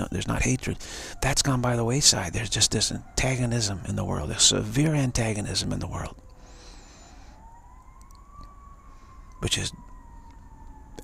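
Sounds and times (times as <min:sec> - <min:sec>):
distant siren wailing: 0:00.0 - 0:11.0.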